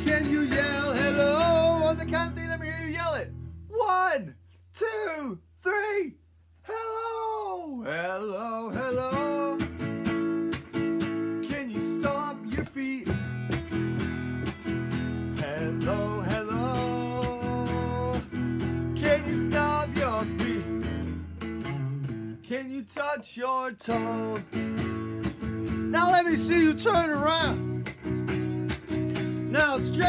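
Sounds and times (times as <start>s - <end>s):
electric guitar strumming: 0.0s - 3.5s, 8.8s - 22.4s, 23.9s - 30.0s.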